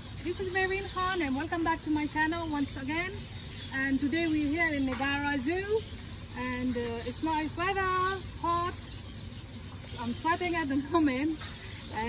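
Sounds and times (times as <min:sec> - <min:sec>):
faint steady hiss: 0:00.0 - 0:12.0
woman speaking: 0:00.2 - 0:05.8, 0:06.4 - 0:08.9, 0:09.8 - 0:12.0.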